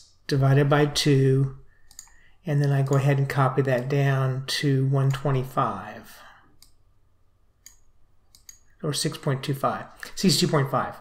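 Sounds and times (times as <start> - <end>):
computer mouse clicks: 1.8 - 3.1, 7.6 - 8.7.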